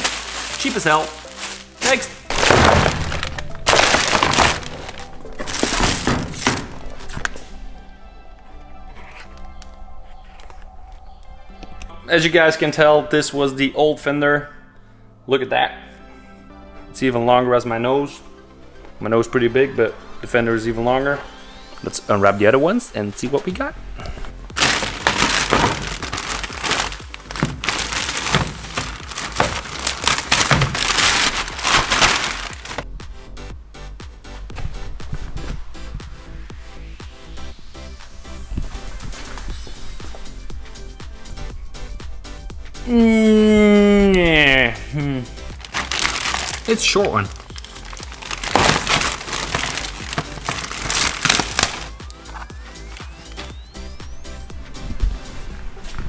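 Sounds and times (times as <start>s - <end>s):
plastic packaging crinkling: 0.0s - 7.0s, 24.6s - 32.8s, 45.5s - 53.3s
background music with steady beat: 0.0s - 56.0s.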